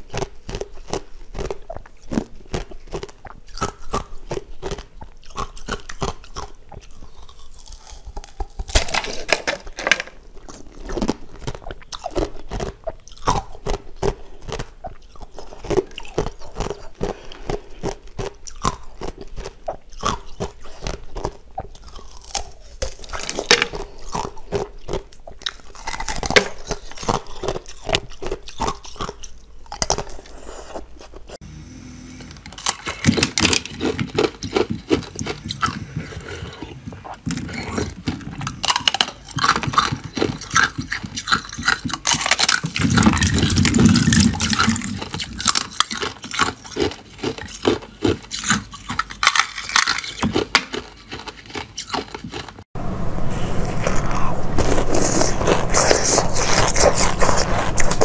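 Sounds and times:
ice crunching between teeth: 0:00.0 - 0:31.4, 0:32.1 - 0:52.6, 0:53.9 - 0:58.0.

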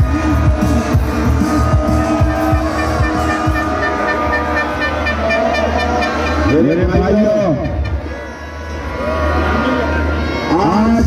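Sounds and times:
horns tooting: 0:00.0 - 0:11.0
loud music: 0:00.0 - 0:11.0.

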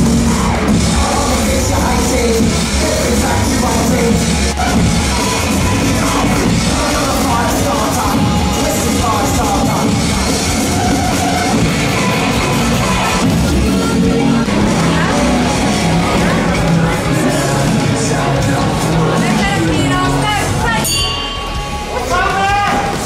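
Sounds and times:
loud rock music: 0:00.0 - 0:23.0.

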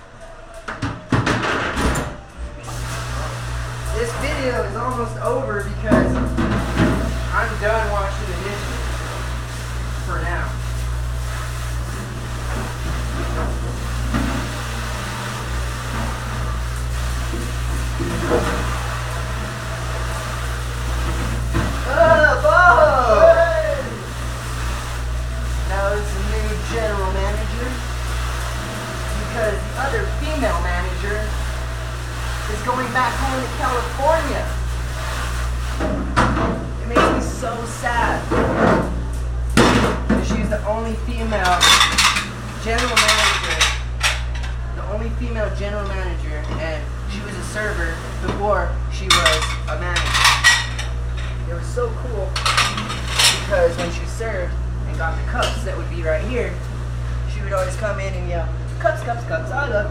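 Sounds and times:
dishes clattering in metal sink: 0:00.6 - 0:02.2, 0:05.8 - 0:09.6, 0:11.2 - 0:23.3, 0:24.0 - 0:40.5, 0:41.4 - 0:44.6, 0:48.2 - 0:51.5, 0:52.2 - 0:54.0.

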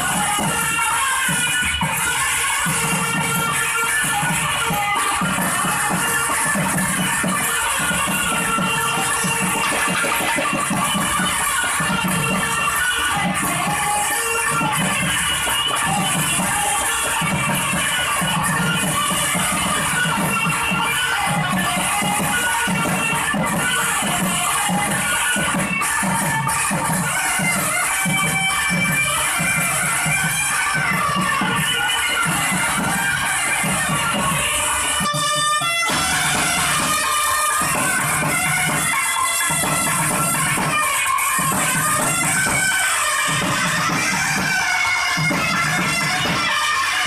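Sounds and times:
barrel drums in steady rhythm: 0:00.0 - 0:47.0
reedy wavering wind instrument melody: 0:00.0 - 0:47.0.

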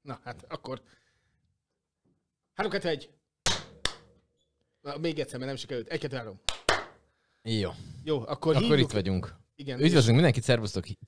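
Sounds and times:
hand claps: 0:03.5 - 0:04.1, 0:06.4 - 0:07.0.

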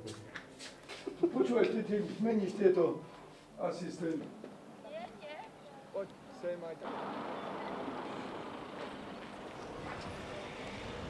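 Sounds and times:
road traffic rush: 0:06.8 - 0:11.0.

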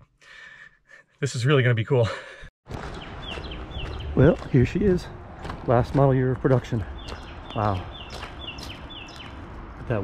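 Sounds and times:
outdoor background noise: 0:00.0 - 0:10.0
small bird chirping: 0:02.9 - 0:04.8, 0:06.6 - 0:09.4.

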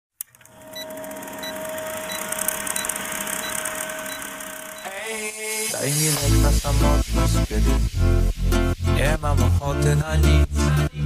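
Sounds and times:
film projector whirring: 0:00.2 - 0:05.0
faint projector ticks: 0:01.4 - 0:04.9
song with voice: 0:04.0 - 0:11.0.

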